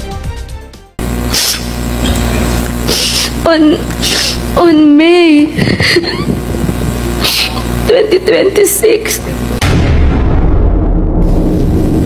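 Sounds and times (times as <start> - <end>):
steady low hum: 1.0 - 12.0
short hiss: 1.2 - 3.4, 4.0 - 4.5.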